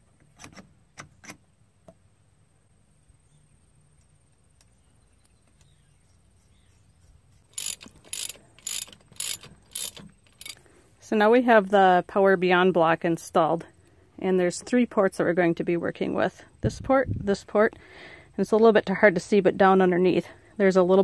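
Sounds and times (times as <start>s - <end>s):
metal parts clicking: 7.5s - 10.6s
ratchet wrench clicking: 7.5s - 10.6s.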